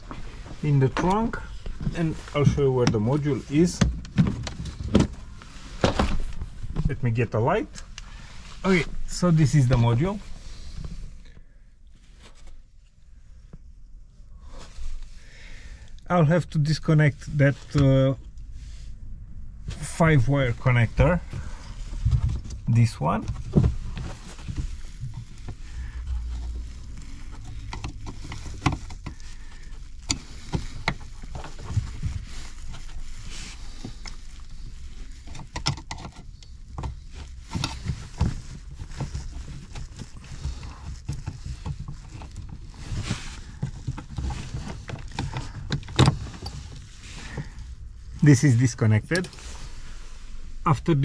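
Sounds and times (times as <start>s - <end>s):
low steady rumble: 0.0s - 51.0s.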